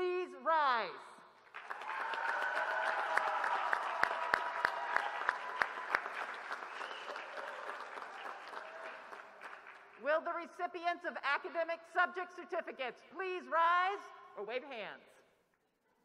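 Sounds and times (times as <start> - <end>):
close hands clapping sharply: 1.5 - 9.9
audience applause: 1.5 - 10.0
cheering voices: 1.6 - 9.1.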